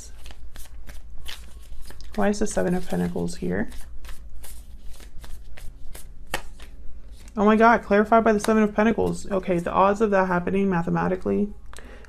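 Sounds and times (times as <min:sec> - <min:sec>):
cards being shuffled: 0:00.0 - 0:07.6.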